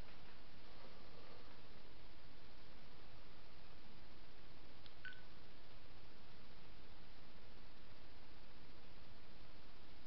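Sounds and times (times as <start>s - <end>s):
recording hiss: 0.0s - 10.0s
faint high-pitched beep: 5.0s - 5.3s.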